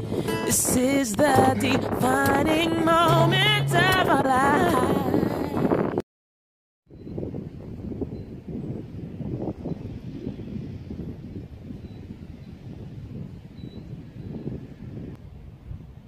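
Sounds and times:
wind buffeting microphone: 0.0 - 6.0, 6.9 - 16.0.

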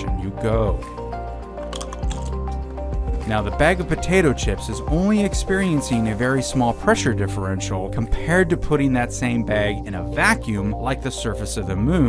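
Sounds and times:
background music: 0.0 - 12.0
potato chip crunching: 1.7 - 2.4.

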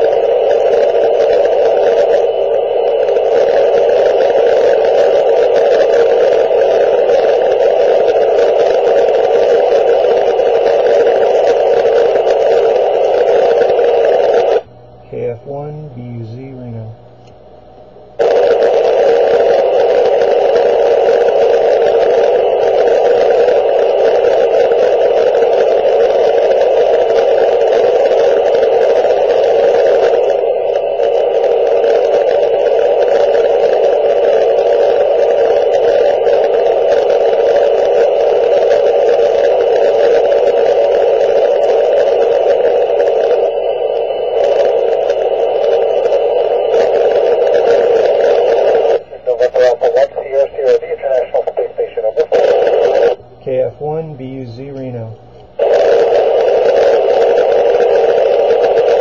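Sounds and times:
radio static hiss: 0.0 - 59.0.

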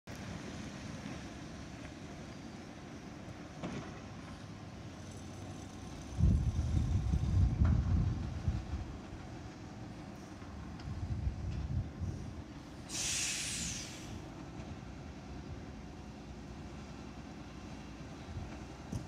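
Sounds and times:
loud uneven low rumble: 6.0 - 9.4
distant diesel truck engine: 12.4 - 19.0.

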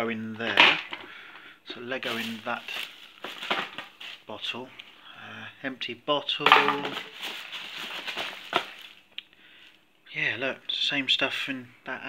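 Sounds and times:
plastic bag rustling: 1.8 - 4.3, 6.5 - 9.1.

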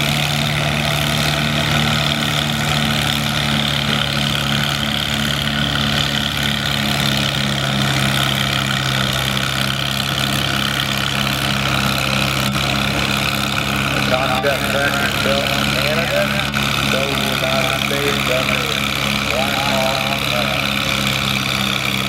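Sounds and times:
tractor engine under heavy load: 0.0 - 22.0.

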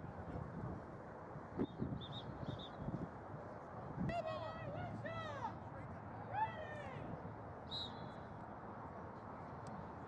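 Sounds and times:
open-air background noise: 0.0 - 10.0
high whistle-like tone: 7.7 - 8.0.

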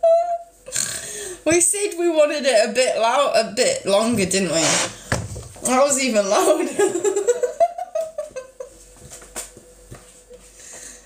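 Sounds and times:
woman's wordless voice: 1.4 - 4.9, 5.6 - 7.0.

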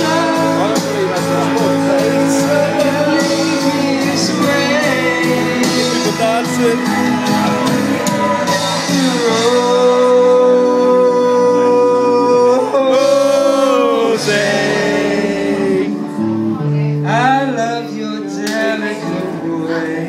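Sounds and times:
instrumental accompaniment: 0.0 - 20.0
man singing into a microphone: 0.0 - 20.0.

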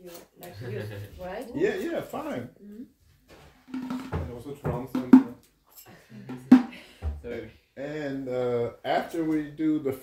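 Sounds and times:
frame drum struck by hand: 3.7 - 5.4, 6.3 - 7.2.

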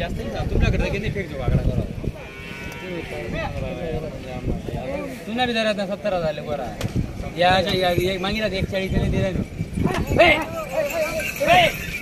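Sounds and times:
men's voices: 0.0 - 12.0.

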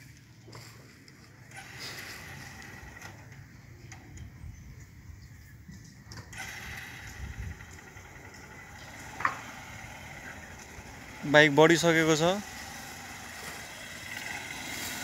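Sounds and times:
motorcycle engine low rumble: 0.0 - 15.0.

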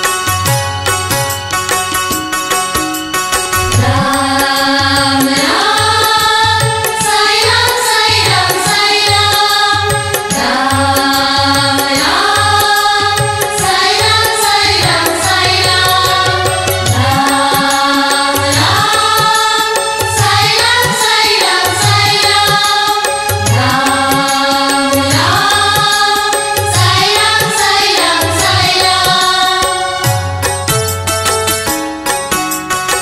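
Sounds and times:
low drum beat: 3.6 - 5.7
women singing: 3.6 - 30.2.

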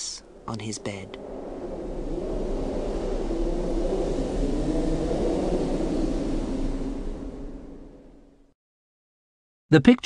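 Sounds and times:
low rumbling noise: 0.0 - 8.5.

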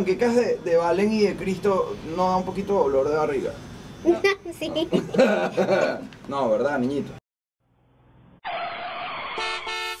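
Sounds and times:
vehicle horn honking: 9.4 - 10.0.

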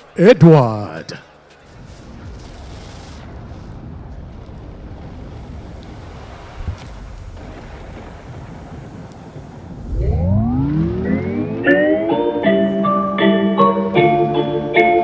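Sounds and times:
rising synth sweep: 9.8 - 13.2.

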